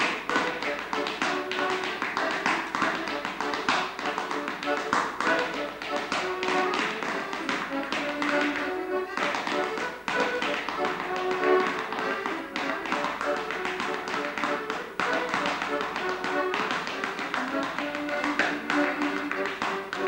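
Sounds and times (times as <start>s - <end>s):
accordion playing dance tune: 0.0s - 20.0s
shoes tapping on hard floor: 0.0s - 20.0s.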